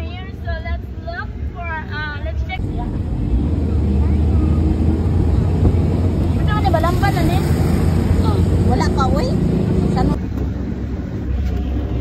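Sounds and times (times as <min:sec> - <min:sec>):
vehicle engine rumble: 0:00.0 - 0:12.0
wind on microphone: 0:02.6 - 0:10.2
woman talking: 0:06.3 - 0:10.2.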